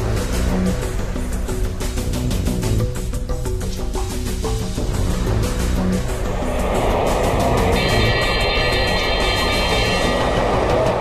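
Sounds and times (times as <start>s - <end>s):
intro theme music: 0.0s - 11.0s
rushing noise swell: 4.8s - 11.0s
high steady tones: 6.0s - 11.0s.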